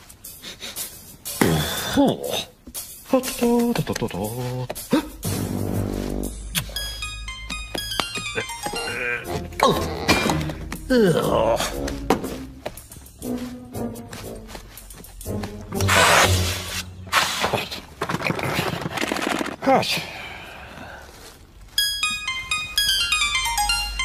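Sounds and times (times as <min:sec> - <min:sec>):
plinking keyboard music: 0:05.2 - 0:16.0, 0:21.7 - 0:24.0.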